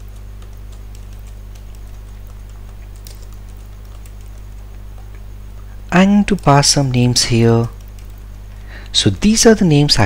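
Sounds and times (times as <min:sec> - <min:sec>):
keyboard keystroke clicks: 0:00.0 - 0:05.2
steady low hum: 0:00.0 - 0:10.0.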